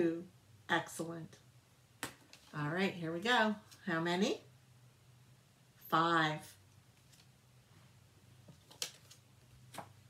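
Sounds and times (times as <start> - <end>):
low room hum: 0.0 - 10.0
cards clicking and rustling: 8.4 - 10.0.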